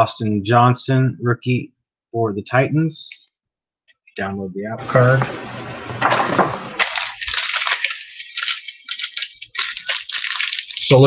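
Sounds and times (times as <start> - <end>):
wrappers and cards crinkling: 6.8 - 11.0.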